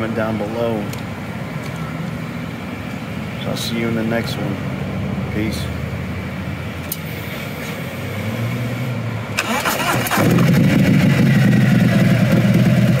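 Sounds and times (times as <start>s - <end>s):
motorcycle starter cranking: 9.4s - 13.0s
motorcycle engine idling: 10.3s - 13.0s.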